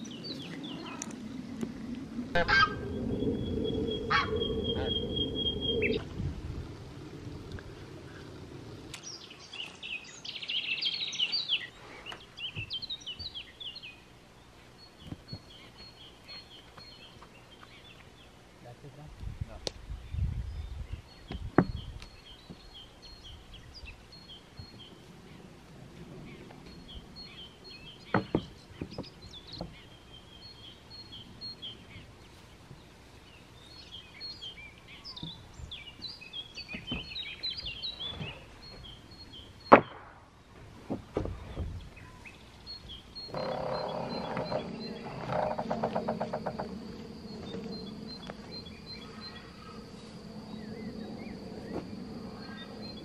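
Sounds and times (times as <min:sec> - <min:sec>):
high-pitched buzz with low hum: 0:00.0 - 0:09.4, 0:43.2 - 0:53.0
birdsong: 0:00.0 - 0:53.0.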